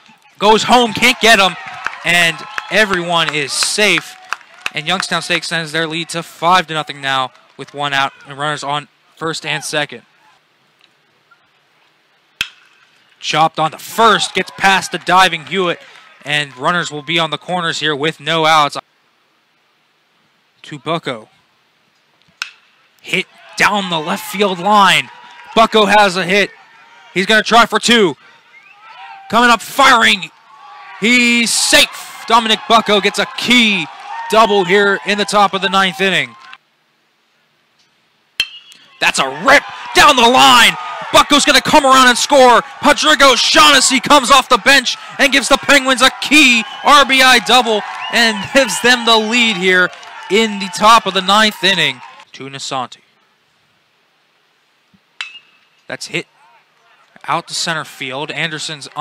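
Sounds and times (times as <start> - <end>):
baseball bat hitting ball: 12.4 - 12.8, 22.4 - 22.6, 38.4 - 38.9, 55.2 - 55.6.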